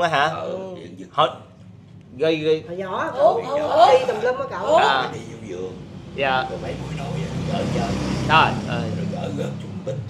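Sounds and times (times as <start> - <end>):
voice: 0.0 - 1.5, 2.2 - 10.0
low engine hum: 3.0 - 10.0.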